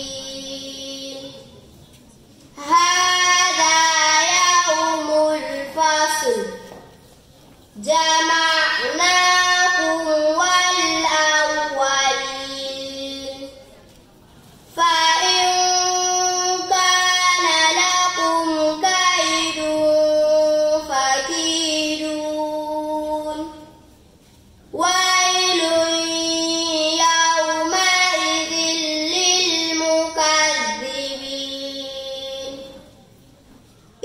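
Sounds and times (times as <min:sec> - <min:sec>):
girl reciting in chanted style: 0:00.0 - 0:01.8, 0:02.5 - 0:07.0, 0:07.7 - 0:13.9, 0:14.5 - 0:24.0, 0:24.7 - 0:34.0.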